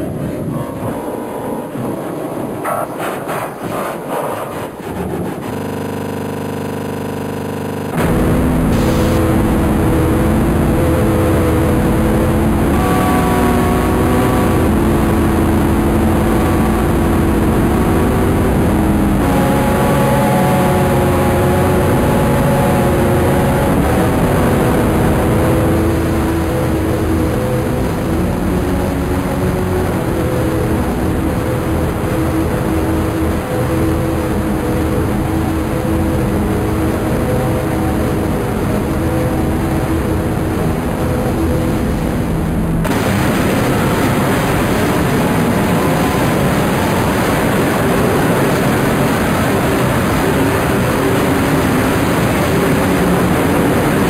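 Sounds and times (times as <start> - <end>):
dense distorted roaring noise: 0.0 - 54.0
droning held tones: 0.0 - 54.0
steady electronic buzz: 4.0 - 54.0.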